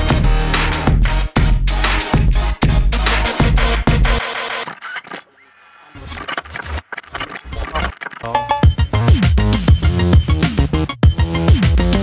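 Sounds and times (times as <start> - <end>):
choppy stuttering bass sounds: 6.0 - 12.0
electronic dance music beat: 7.7 - 12.0.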